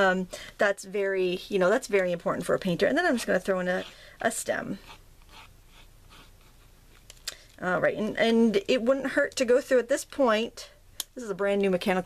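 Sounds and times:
pencil scratching on card: 0:03.4 - 0:04.1, 0:04.7 - 0:06.8.

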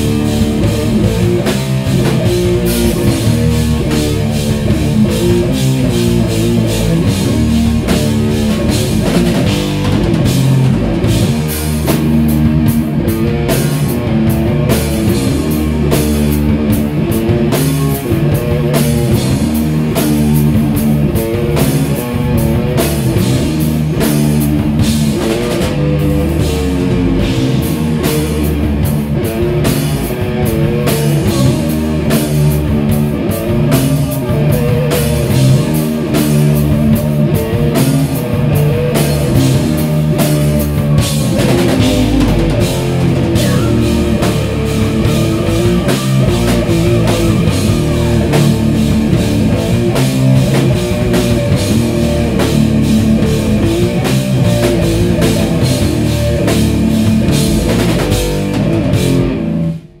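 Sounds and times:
live metal band playing: 0:00.0 - 1:00.0
vocals: 0:41.8 - 0:48.3.

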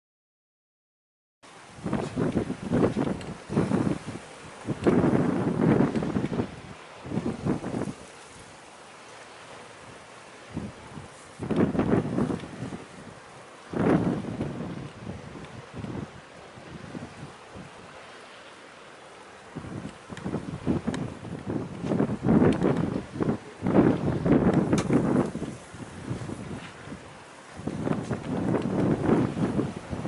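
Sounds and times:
hiss of wind and sea: 0:01.4 - 0:30.0
wind buffeting microphone: 0:01.6 - 0:30.0.

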